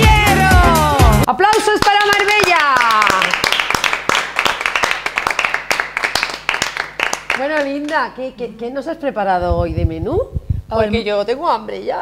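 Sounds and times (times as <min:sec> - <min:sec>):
small group applauding: 0:01.4 - 0:08.0.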